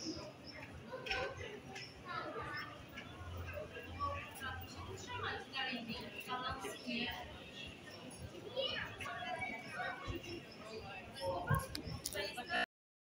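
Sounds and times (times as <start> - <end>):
children's voices: 0.0 - 12.7
people talking: 0.0 - 12.7.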